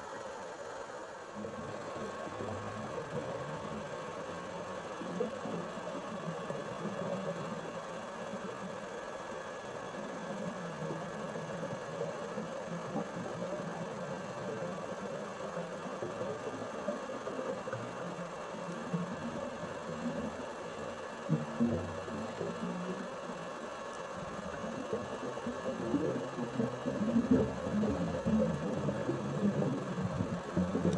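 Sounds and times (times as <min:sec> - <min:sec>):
underwater mechanical hum and hiss: 0:00.0 - 0:30.9.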